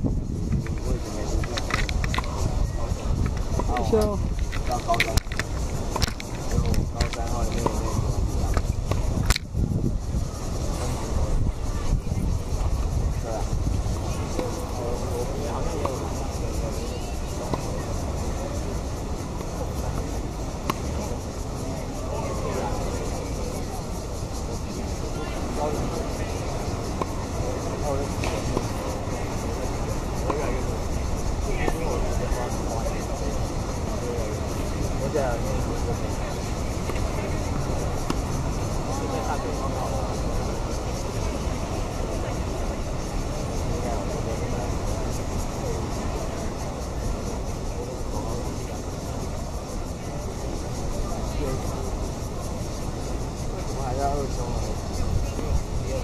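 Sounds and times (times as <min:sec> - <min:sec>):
faint distant voices: 0:00.0 - 0:56.0.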